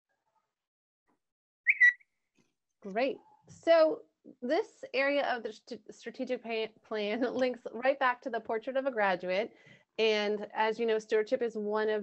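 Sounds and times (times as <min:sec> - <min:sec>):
high whistle-like tone: 0:01.7 - 0:02.1.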